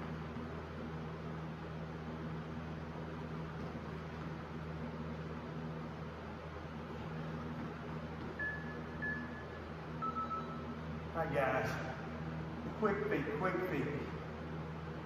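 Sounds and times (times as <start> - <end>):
electric fan humming: 0.0 - 15.0
faint short high beeps: 10.0 - 10.7.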